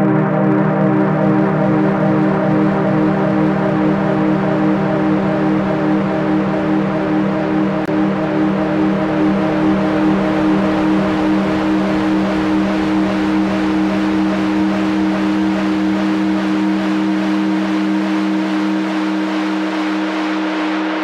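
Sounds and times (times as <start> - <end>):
loud low synth drone: 0.0 - 21.0.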